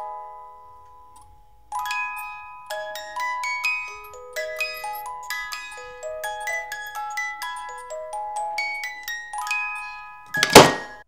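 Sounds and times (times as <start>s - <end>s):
music box playing a tune: 0.0s - 11.0s.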